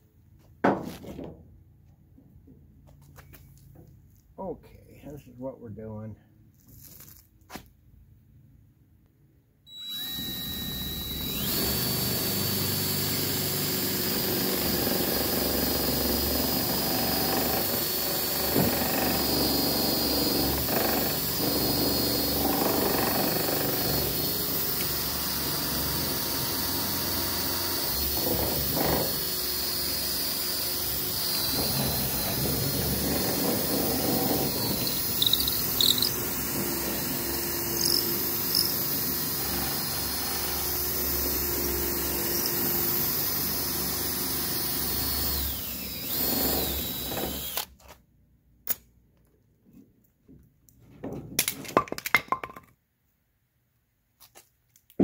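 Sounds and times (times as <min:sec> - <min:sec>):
cordless drill boring through wood: 0:09.7 - 0:47.8.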